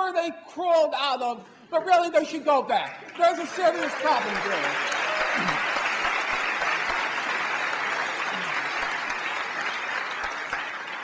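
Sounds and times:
audience applauding: 2.8 - 11.0.

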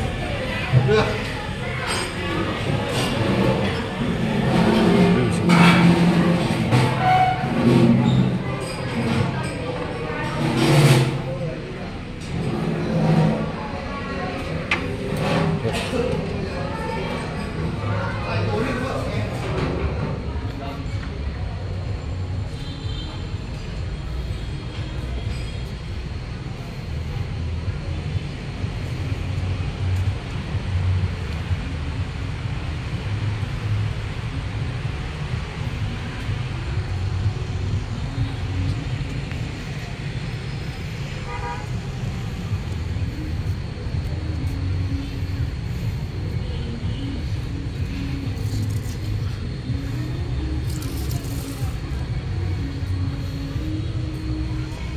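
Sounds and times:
road traffic rumble: 0.0 - 54.9
vehicle horn toots: 6.9 - 7.6, 41.3 - 41.7.

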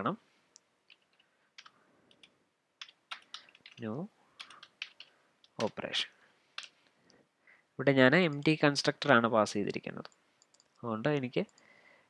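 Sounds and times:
keyboard keystroke clicks: 4.4 - 5.8.

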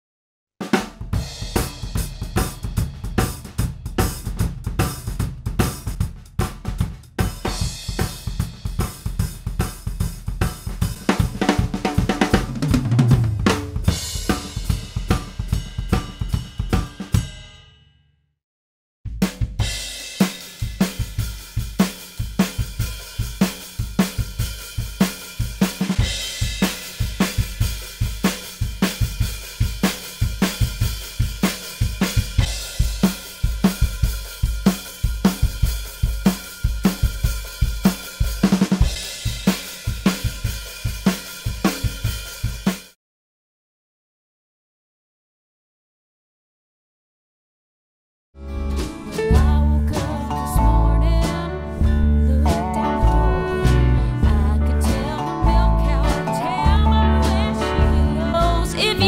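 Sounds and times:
acoustic drum kit playing: 0.6 - 17.6, 19.1 - 43.0, 48.4 - 59.0.

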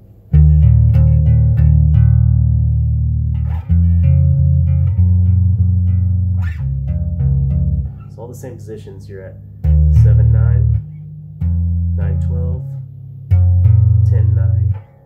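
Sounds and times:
electric bass tremolo plucks: 0.3 - 15.0.

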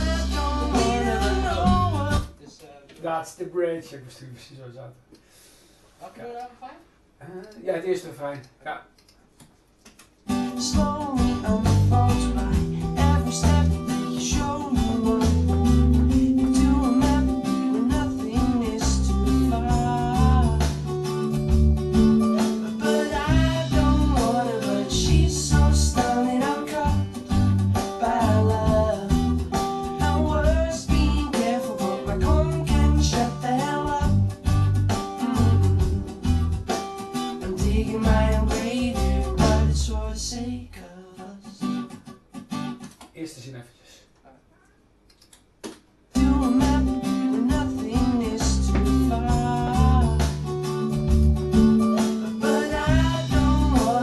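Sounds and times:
pop song with man singing: 0.0 - 2.4, 10.4 - 21.3, 22.0 - 41.8, 46.2 - 54.0.

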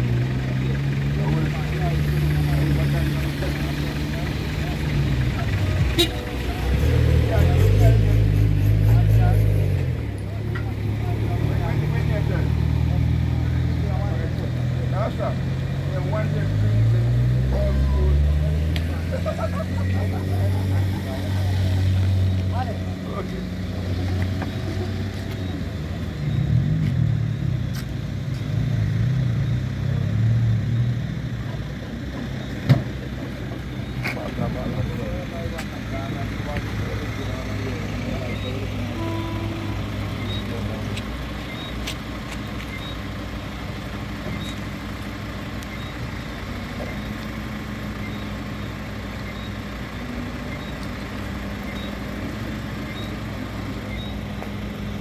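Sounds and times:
people talking indistinctly: 0.0 - 26.4, 31.2 - 45.1
vehicle engine idling: 0.0 - 55.0.

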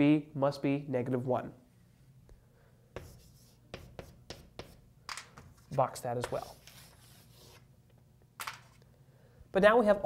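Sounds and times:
chalk strokes on blackboard: 3.0 - 4.8, 5.6 - 7.7
chalk tapping on blackboard: 3.0 - 5.5.

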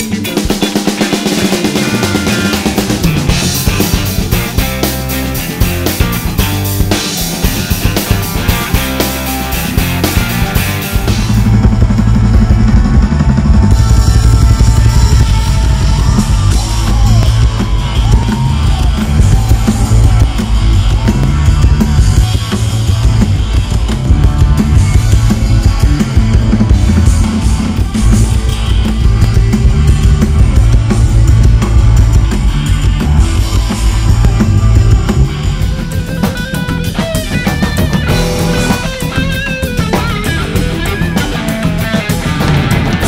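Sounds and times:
funk-rock band music: 0.0 - 43.0
lead guitar bending notes: 34.6 - 43.0.

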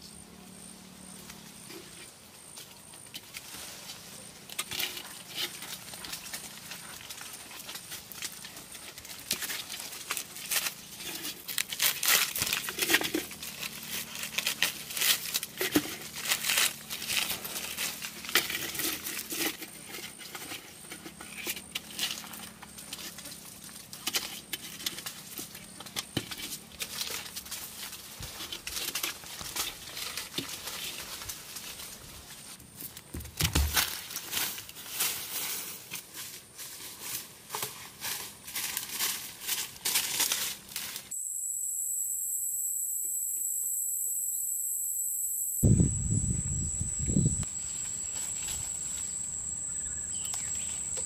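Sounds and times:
dry leaves and brush crunching: 1.0 - 41.1, 45.6 - 51.0
leafy twigs rustling and crackling: 1.2 - 41.1, 47.4 - 51.0
high-pitched insect drone: 41.1 - 51.0.

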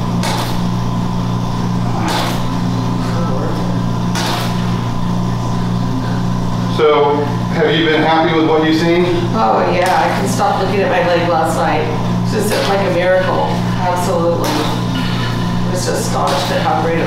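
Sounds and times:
suction pump humming: 0.0 - 17.0.

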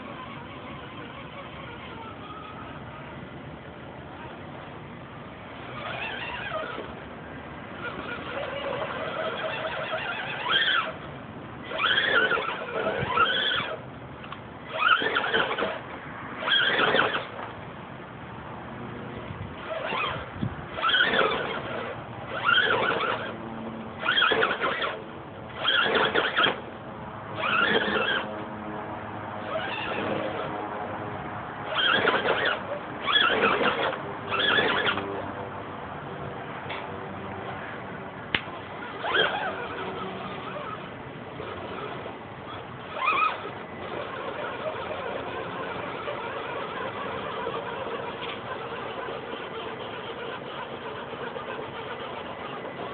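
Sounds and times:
electric motor whining: 0.0 - 17.5, 18.8 - 52.9.

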